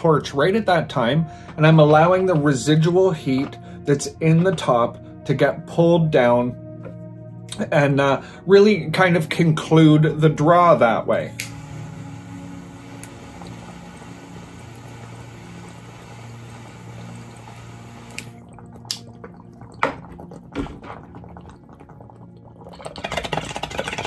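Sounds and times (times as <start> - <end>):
water bubbling in a bong: 13.3 - 24.0.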